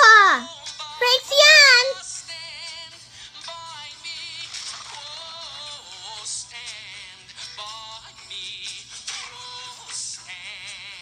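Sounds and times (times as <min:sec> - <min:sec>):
cartoon singing voice with music: 0:00.0 - 0:11.0.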